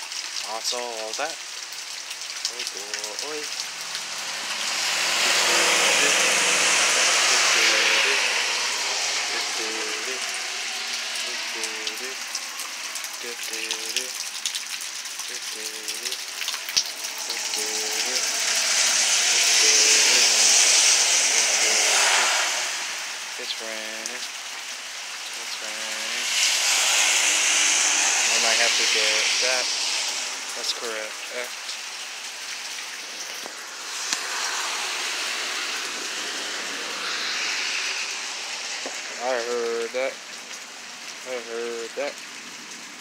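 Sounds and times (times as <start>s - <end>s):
heavy rain pouring: 0.0s - 43.0s.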